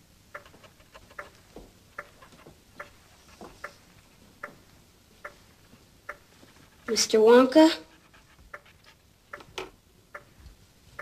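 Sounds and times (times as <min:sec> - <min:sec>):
clock ticking: 0:00.3 - 0:10.4
pen scratching on paper: 0:07.8 - 0:09.0.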